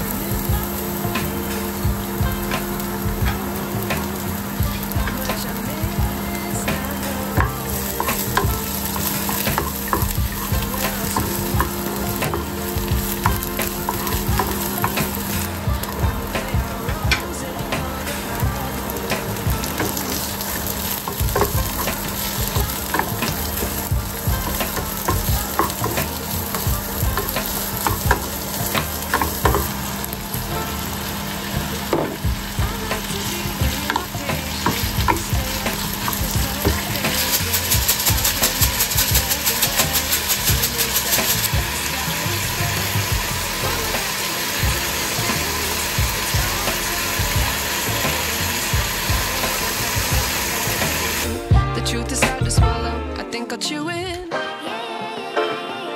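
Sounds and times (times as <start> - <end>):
food sizzling in oil: 0.0 - 51.5.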